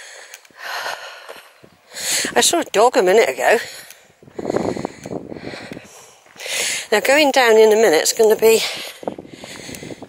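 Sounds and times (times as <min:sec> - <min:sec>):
person speaking: 0:02.2 - 0:03.8, 0:06.9 - 0:08.8.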